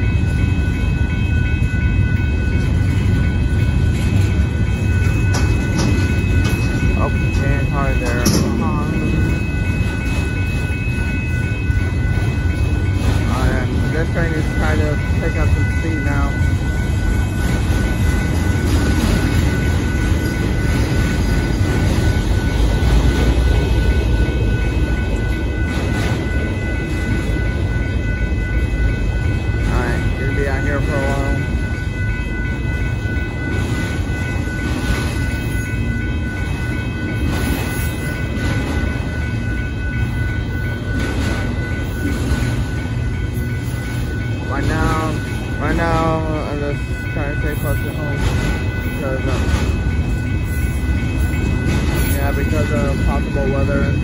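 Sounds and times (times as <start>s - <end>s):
crossing warning bell: 0.0s - 54.0s
freight train wheels rumbling: 0.0s - 54.0s
train clanks: 0.0s - 54.0s.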